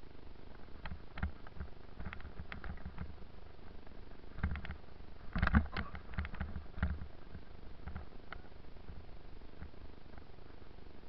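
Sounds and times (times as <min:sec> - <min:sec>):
bicycle knocking and rattling: 0:00.6 - 0:03.2, 0:03.8 - 0:09.0.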